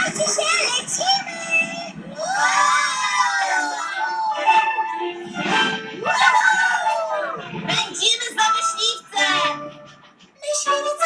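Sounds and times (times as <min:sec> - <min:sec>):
cartoon children whooping: 0:02.2 - 0:05.0, 0:06.0 - 0:07.4
upbeat soundtrack music: 0:04.1 - 0:11.0.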